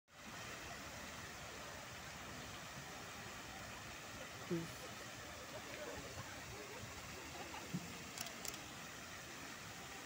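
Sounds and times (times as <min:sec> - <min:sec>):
fountain water spray: 0:00.1 - 0:10.0.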